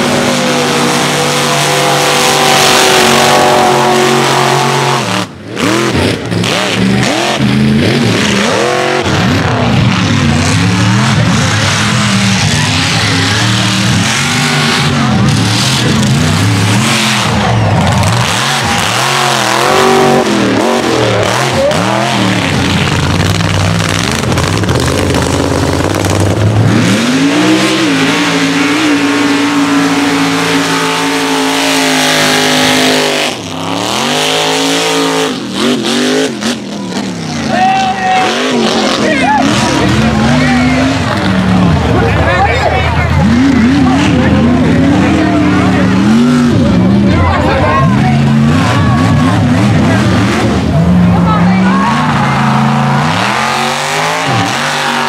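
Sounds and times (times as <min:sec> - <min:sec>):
truck engines revving: 0:00.0 - 0:55.0.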